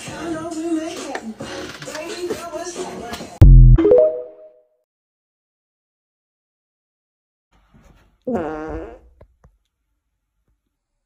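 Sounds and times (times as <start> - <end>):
loud fart: 8.3 - 9.2.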